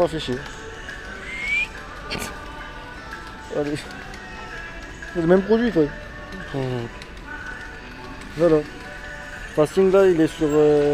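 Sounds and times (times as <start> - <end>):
supermarket background hum: 0.0 - 10.9.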